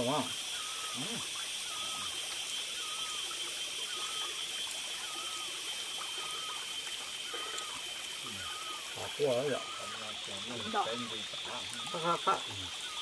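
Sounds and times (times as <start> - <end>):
high-pitched hum: 0.0 - 13.0
stream trickling: 0.0 - 13.0.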